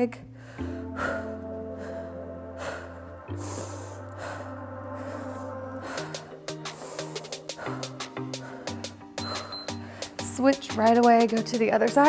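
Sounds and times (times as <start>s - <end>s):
background music with held chords: 0.0s - 12.0s.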